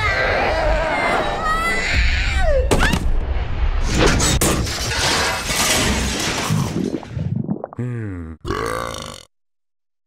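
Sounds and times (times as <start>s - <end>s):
cartoon crash and clatter: 3.8s - 7.2s
throaty burp-like grunts: 7.7s - 9.4s.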